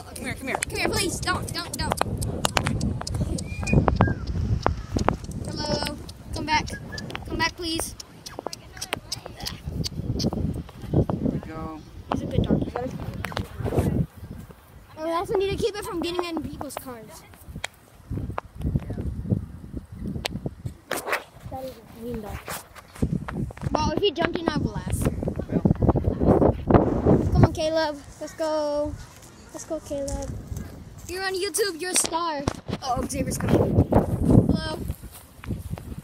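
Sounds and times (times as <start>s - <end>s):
indistinct voices: 0.0s - 17.6s
footsteps on pavement: 0.4s - 11.2s, 27.8s - 36.0s.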